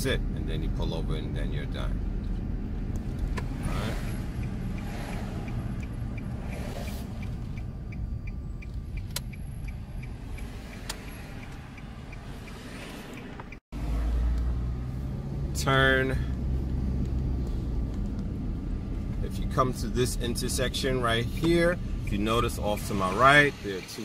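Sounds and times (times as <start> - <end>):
car road and engine rumble: 0.0 - 24.0
turn signal ticking: 2.0 - 24.0.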